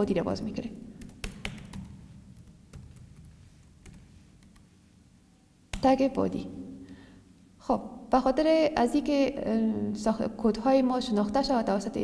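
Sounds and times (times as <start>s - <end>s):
computer keyboard keystrokes: 1.0s - 4.6s.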